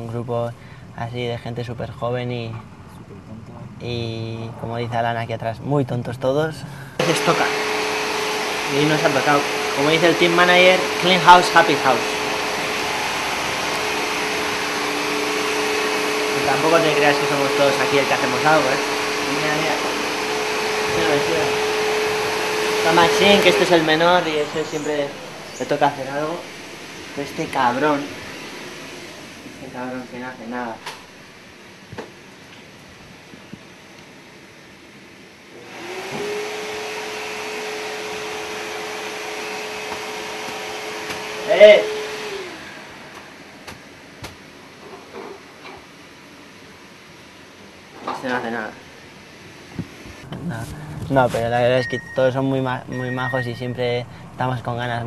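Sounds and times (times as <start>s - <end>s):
vacuum cleaner running: 7.0s - 32.3s, 35.5s - 44.9s.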